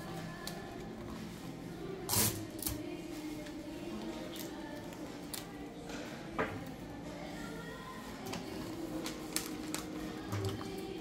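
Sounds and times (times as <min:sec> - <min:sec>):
wrapping paper crinkling and rustling: 0:07.4 - 0:11.0
paper crackle: 0:08.2 - 0:10.7.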